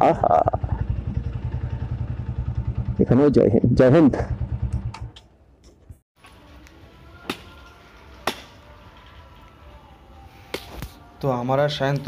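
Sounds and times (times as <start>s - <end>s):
motorcycle engine idling: 0.1s - 5.1s.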